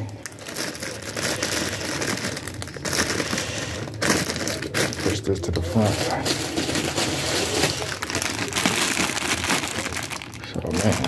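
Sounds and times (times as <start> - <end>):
plastic packaging crinkling: 0.0 - 11.0.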